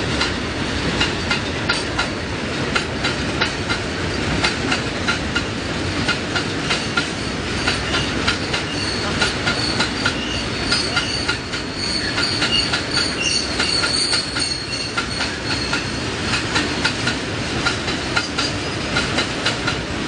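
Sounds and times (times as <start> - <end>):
wheels clacking over rail joints: 0.1 - 19.9
high wheel squeal: 7.2 - 16.1.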